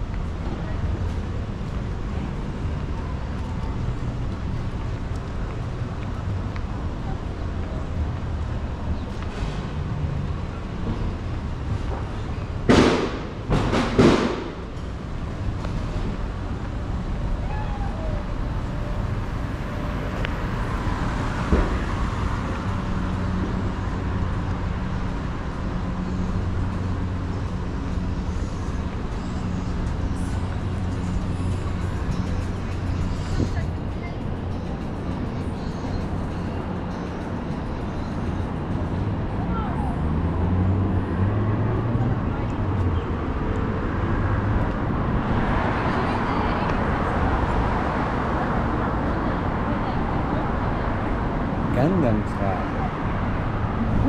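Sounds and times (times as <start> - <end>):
passing traffic rush: 0.0 - 54.0
vehicle engine humming: 0.0 - 54.0.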